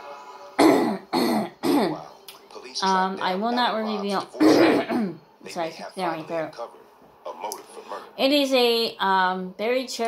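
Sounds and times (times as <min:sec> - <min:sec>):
woman coughing: 0:00.6 - 0:02.0, 0:04.4 - 0:05.2.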